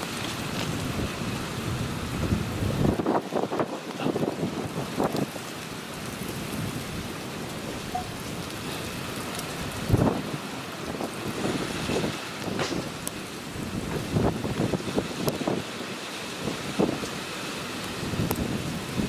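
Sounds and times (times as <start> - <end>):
strong wind buffeting microphone: 0.0 - 19.0.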